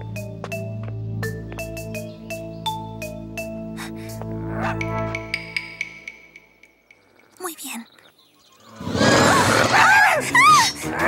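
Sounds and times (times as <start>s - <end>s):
background music: 0.0s - 7.7s, 8.5s - 11.0s
dog-like growling and yelping effect: 8.8s - 10.2s.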